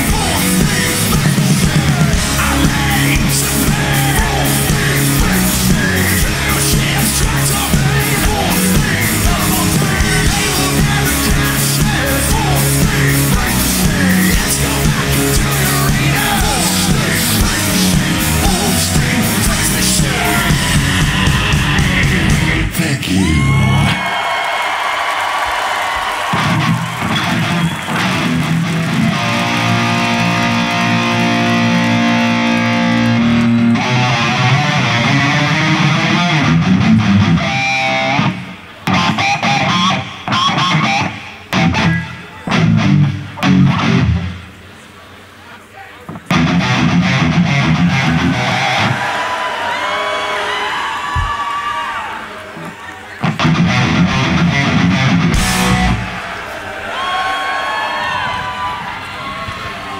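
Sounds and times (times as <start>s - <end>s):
live rock band playing: 0.0s - 22.8s, 26.3s - 44.6s, 46.2s - 49.0s, 53.2s - 56.4s
crowd noise: 0.0s - 59.9s.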